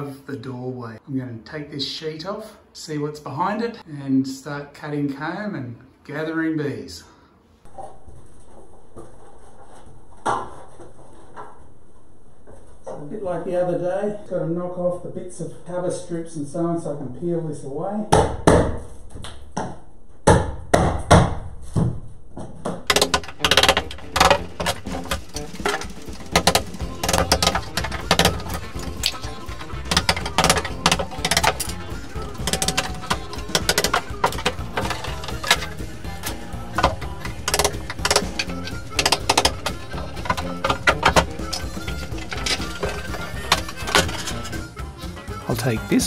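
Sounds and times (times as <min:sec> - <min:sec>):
tool knocking wooden strips: 0:22.7 - 0:44.5
background music: 0:22.9 - 0:46.0.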